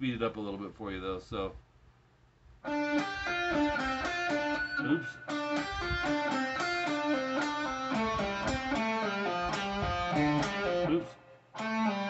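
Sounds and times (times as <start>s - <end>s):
electric guitar fast lead run: 2.7s - 11.0s.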